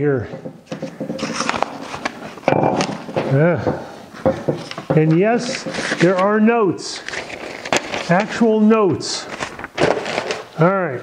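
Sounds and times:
objects knocking on wooden workbench: 0.2s - 1.2s, 2.4s - 5.3s
paper rustling and shuffling: 0.7s - 3.4s, 4.5s - 10.9s.

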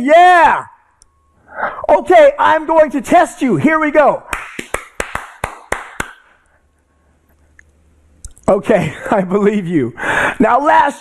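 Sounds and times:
faint low hum: 0.0s - 11.0s
hand clap: 4.3s - 6.5s.

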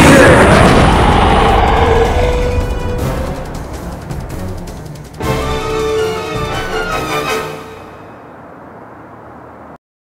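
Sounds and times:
explosion boom: 0.0s - 5.2s
background music: 0.5s - 8.3s.

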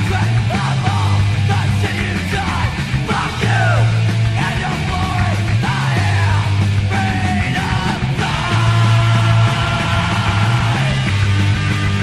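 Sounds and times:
singer yelling: 0.0s - 11.1s
heavy bass line: 0.0s - 12.0s
punk rock band playing: 0.0s - 12.0s.

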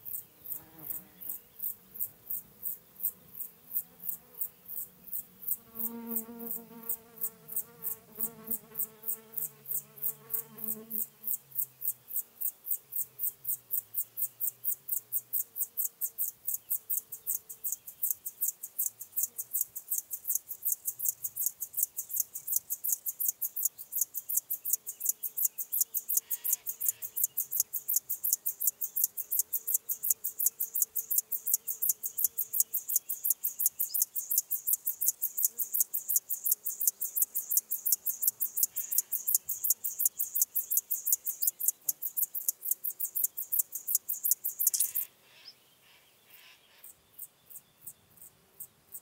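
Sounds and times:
grasshopper stridulating: 0.0s - 45.1s.

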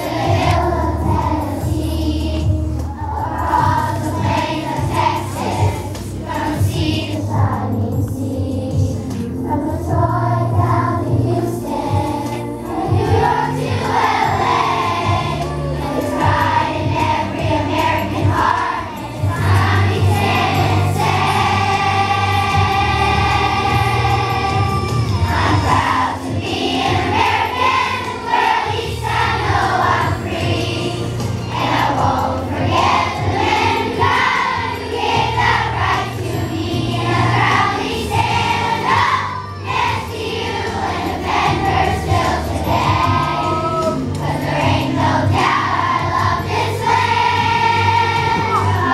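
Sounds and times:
children's choir singing: 0.0s - 48.9s
low instrumental accompaniment: 0.0s - 48.9s.

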